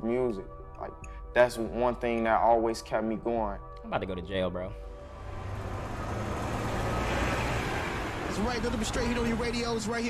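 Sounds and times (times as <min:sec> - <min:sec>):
passing vehicles rumbling: 0:04.9 - 0:10.0.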